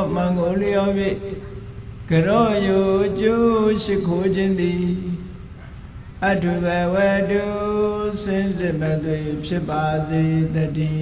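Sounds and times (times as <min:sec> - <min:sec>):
monk chanting: 0:00.0 - 0:11.0.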